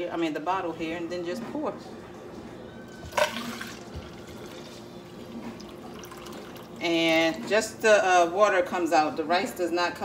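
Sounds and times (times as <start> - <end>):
water splashing into funnel: 3.1 - 4.6
soft water trickle: 3.1 - 7.4.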